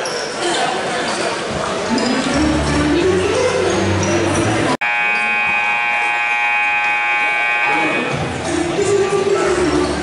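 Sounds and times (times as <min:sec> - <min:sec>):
scoreboard buzzer blast: 0:04.8 - 0:08.2.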